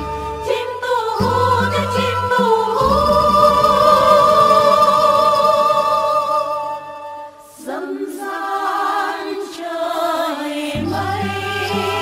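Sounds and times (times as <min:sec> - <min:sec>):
backing music: 0:00.0 - 0:08.8, 0:10.7 - 0:12.0
women singing folk song: 0:00.0 - 0:12.0.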